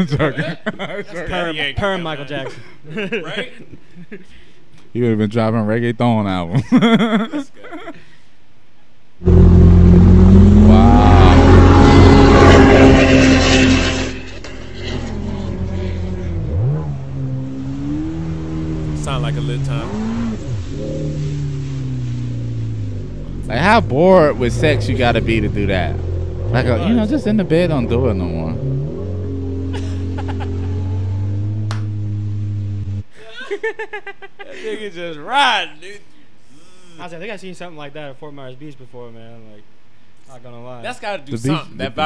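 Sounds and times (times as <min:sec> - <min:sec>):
jet ski engine revving: 0:09.2 - 0:33.1.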